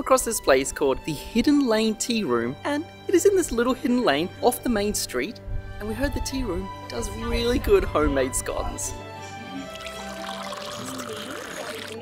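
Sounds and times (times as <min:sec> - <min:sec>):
background music with steady tones: 0:00.0 - 0:12.0
drink pouring into a cup: 0:09.6 - 0:12.0.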